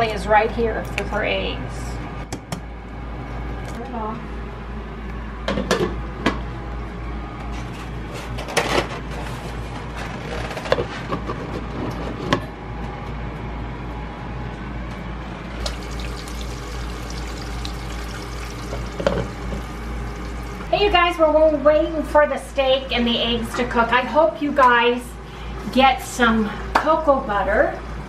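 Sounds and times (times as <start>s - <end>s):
low steady hum: 13.8s - 28.0s
eggs sizzling in a skillet: 15.6s - 20.7s.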